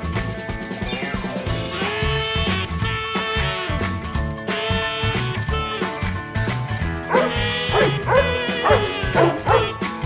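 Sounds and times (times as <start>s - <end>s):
background music: 0.0s - 10.0s
dog barking: 7.1s - 9.8s.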